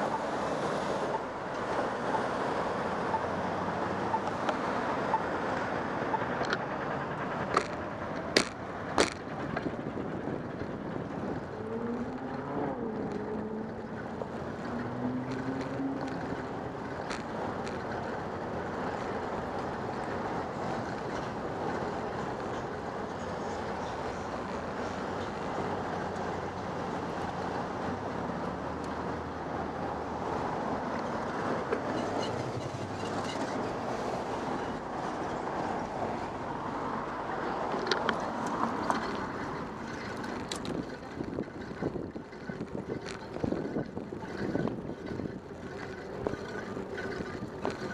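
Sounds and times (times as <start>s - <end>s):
street traffic: 0.0s - 47.9s
wind on microphone: 8.8s - 16.8s, 29.0s - 47.9s.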